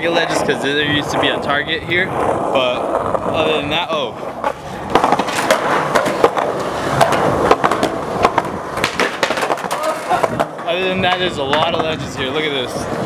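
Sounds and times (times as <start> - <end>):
skateboard rolling over concrete: 0.0 - 13.0
skateboard clacking on ground: 3.9 - 13.0.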